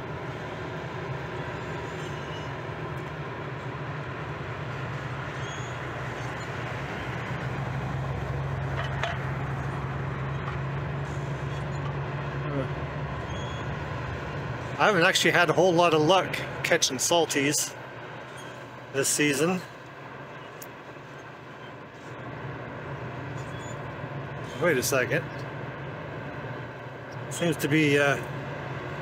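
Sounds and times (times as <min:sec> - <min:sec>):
low machinery hum: 0:00.0 - 0:29.0
outdoor noise: 0:00.0 - 0:29.0.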